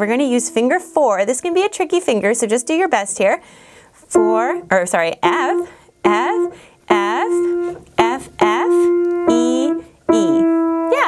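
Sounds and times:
piano notes ringing: 0.0s - 3.4s, 4.1s - 11.0s
woman calling out: 4.2s - 11.0s.

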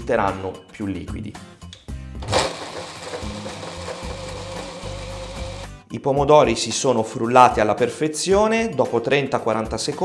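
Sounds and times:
juice churning: 2.2s - 5.7s
electric hand blender whine: 2.2s - 5.8s.

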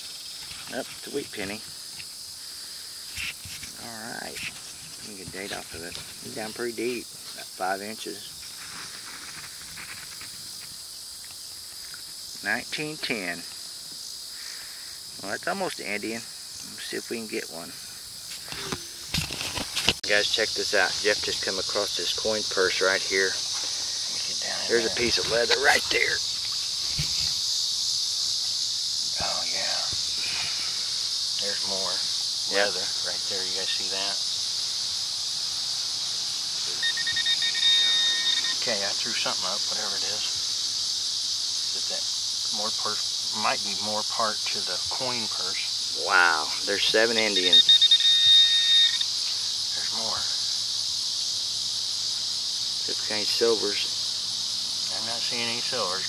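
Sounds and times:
insects droning: 0.0s - 56.0s
high electronic alert tone: 36.8s - 38.6s.

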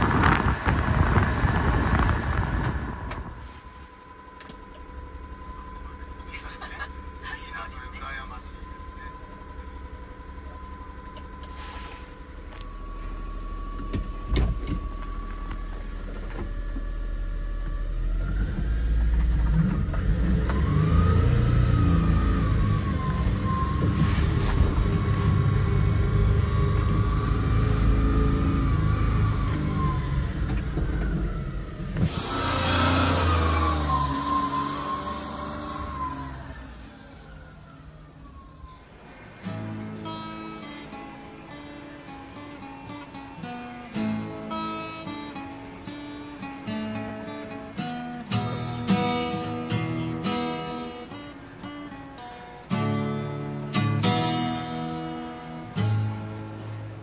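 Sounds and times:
small truck engine revving: 16.5s - 57.0s
acoustic guitar music: 39.0s - 57.0s.

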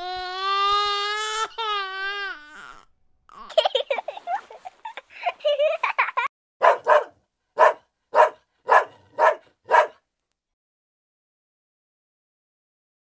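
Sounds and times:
dog barking: 6.6s - 10.0s.

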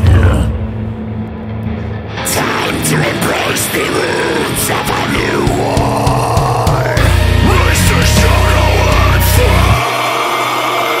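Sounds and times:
heavy metal band: 0.0s - 11.0s.

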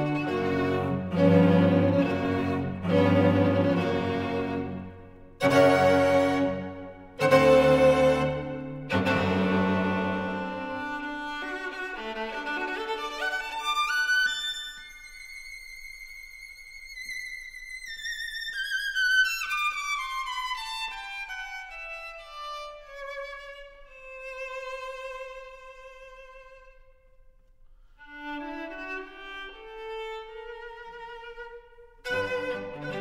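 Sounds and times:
violin playing with vibrato: 0.0s - 27.0s, 28.0s - 33.0s.

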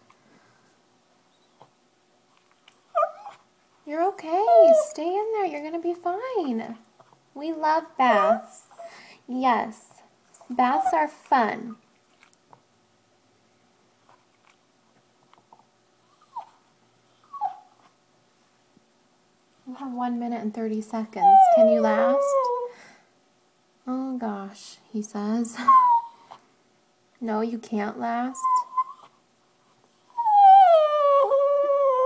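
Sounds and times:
small dog whining: 2.9s - 3.4s, 4.4s - 4.9s, 8.1s - 8.8s, 16.1s - 16.6s, 17.2s - 17.9s, 21.2s - 22.7s, 25.6s - 26.4s, 28.4s - 29.2s, 30.1s - 32.0s.

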